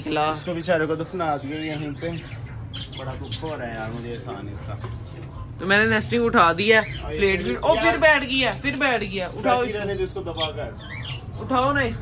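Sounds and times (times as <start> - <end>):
bird squawking: 0.4 - 5.0, 6.6 - 11.9.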